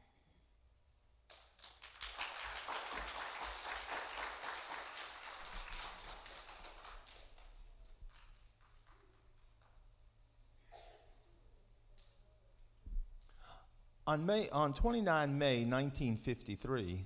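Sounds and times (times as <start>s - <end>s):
audience applause: 1.6s - 9.2s.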